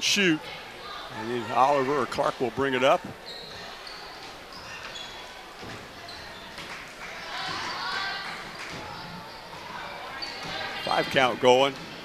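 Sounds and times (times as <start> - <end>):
voices of players and crowd: 0.0 - 12.0
shoe squeaks: 3.1 - 6.6, 9.0 - 11.2.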